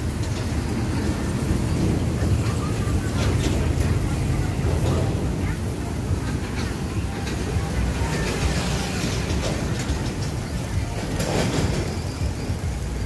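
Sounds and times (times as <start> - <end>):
street background rumble: 0.0 - 13.0.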